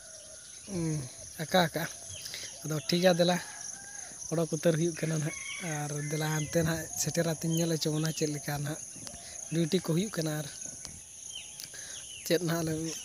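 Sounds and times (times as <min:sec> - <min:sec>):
insects chirring: 0:00.0 - 0:13.0
man talking: 0:00.7 - 0:02.0, 0:02.6 - 0:03.5, 0:04.3 - 0:08.8, 0:09.5 - 0:10.6, 0:12.2 - 0:13.0.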